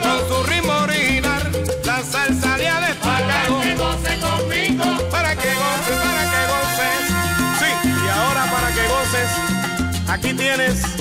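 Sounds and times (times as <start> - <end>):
instrumental salsa music: 0.0 - 11.0.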